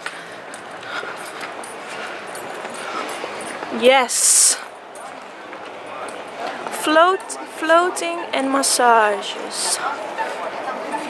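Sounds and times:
city street ambience: 0.0s - 11.0s.

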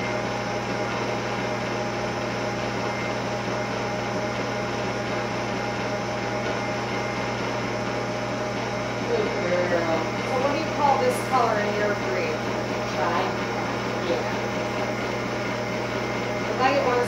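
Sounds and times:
machine motor and pump hum: 0.0s - 17.0s.

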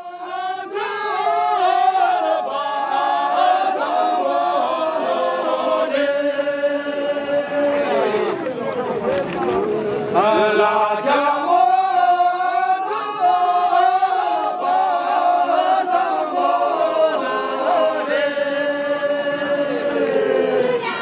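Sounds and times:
men singing in unison: 0.0s - 8.6s, 9.4s - 21.0s.

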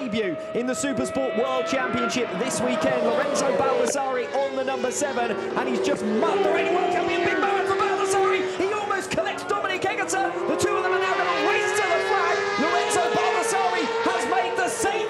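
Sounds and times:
race commentator talking: 0.0s - 15.0s.

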